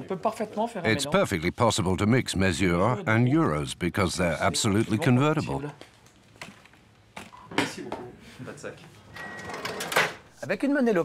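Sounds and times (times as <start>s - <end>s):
cash register clicks: 9.2s - 10.2s.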